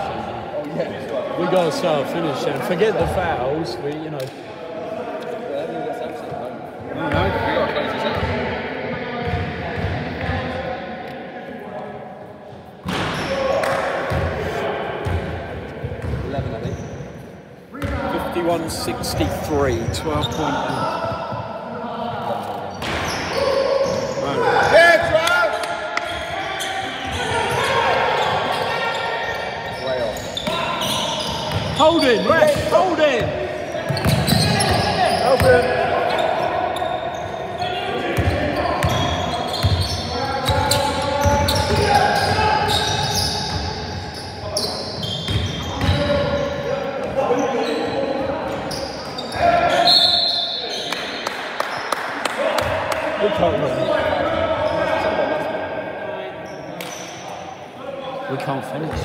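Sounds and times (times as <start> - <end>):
players calling out: 17.6 - 57.8
trainers squeaking on floor: 26.1 - 37.8, 38.6 - 46.6, 47.2 - 50.9.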